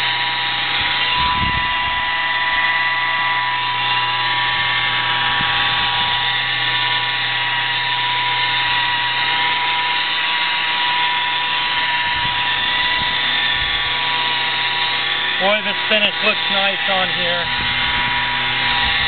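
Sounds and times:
electric polisher whining: 0:00.0 - 0:19.0.

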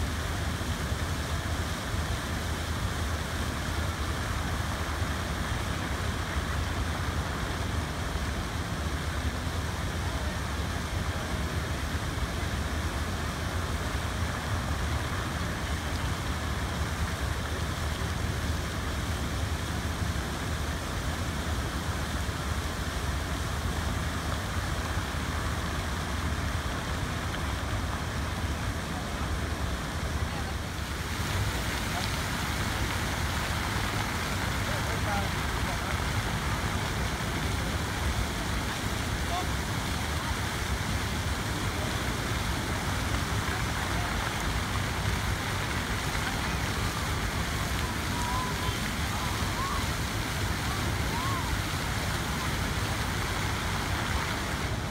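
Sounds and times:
fountain water jets spraying: 0:00.0 - 0:54.9
people talking: 0:28.7 - 0:54.9.

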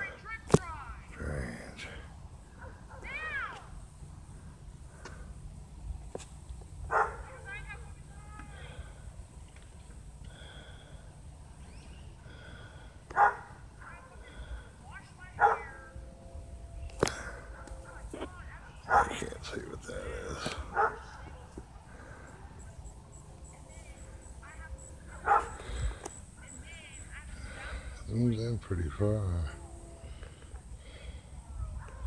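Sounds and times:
dog barking: 0:02.6 - 0:03.1, 0:06.9 - 0:07.5, 0:13.1 - 0:13.5, 0:15.4 - 0:15.8, 0:18.8 - 0:19.2, 0:20.7 - 0:21.1, 0:25.2 - 0:25.6, 0:31.8 - 0:32.0
faint chirping calls: 0:11.4 - 0:13.3.

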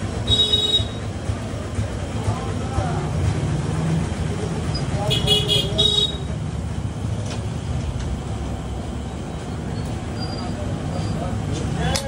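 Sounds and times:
low engine rumble: 0:00.0 - 0:12.0
voices: 0:00.0 - 0:12.0
vehicle horn toots: 0:00.2 - 0:01.1, 0:05.1 - 0:06.3.

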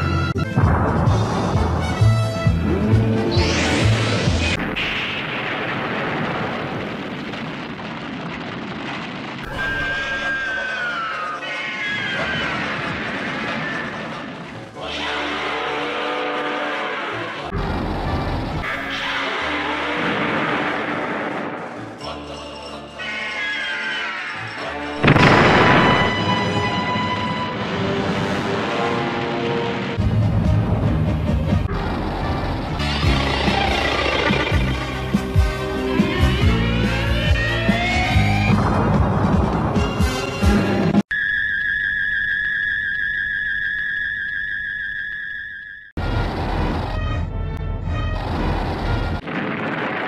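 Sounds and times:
music: 0:00.0 - 0:04.6, 0:09.5 - 0:11.6, 0:14.1 - 0:20.4, 0:21.7 - 0:41.0, 0:46.0 - 0:49.2
high-pitched electronic tone: 0:41.1 - 0:45.9.

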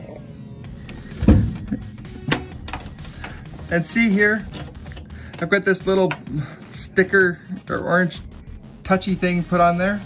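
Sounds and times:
washing machine lid thumping shut: 0:01.2 - 0:01.7.

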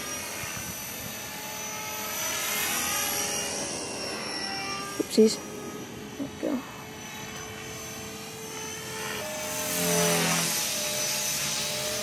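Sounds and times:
rc helicopter motor whirring: 0:00.0 - 0:12.0.

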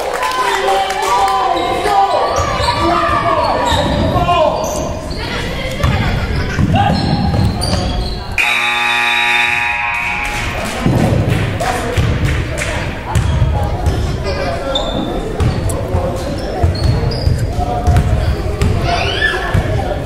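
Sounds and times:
voices in a gym: 0:00.0 - 0:20.0
scoreboard buzzer: 0:08.4 - 0:10.8
basketballs bouncing on hardwood: 0:16.6 - 0:18.8.

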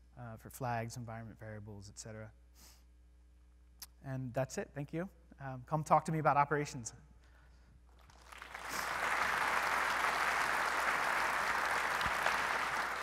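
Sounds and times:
audience applause: 0:08.0 - 0:13.0.

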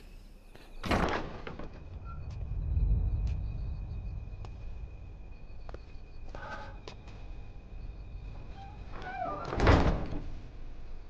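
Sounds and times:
door hinges creaking: 0:08.4 - 0:10.4.

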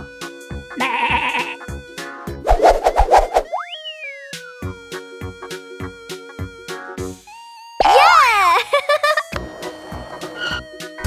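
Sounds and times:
cartoon music: 0:00.6 - 0:01.8, 0:03.0 - 0:11.0.

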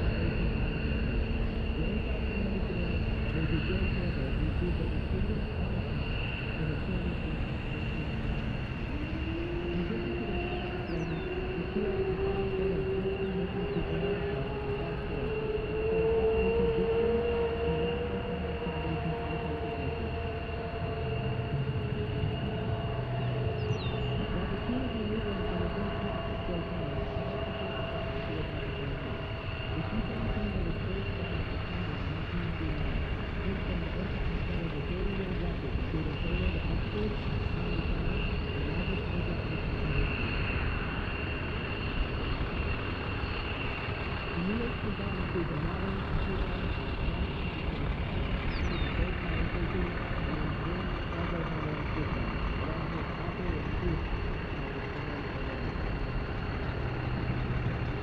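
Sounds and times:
jet engines rumbling and whining: 0:00.0 - 0:58.0.

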